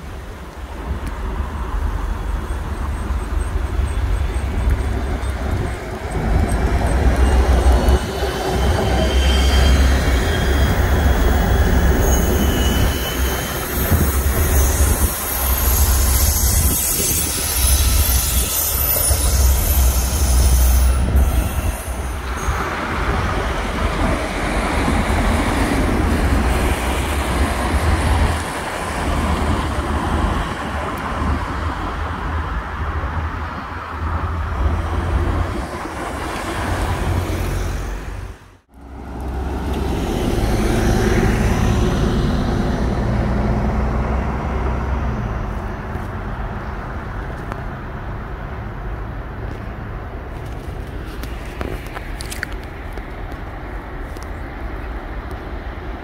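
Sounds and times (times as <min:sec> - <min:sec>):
railway wheels squealing: 0:01.9 - 0:29.8.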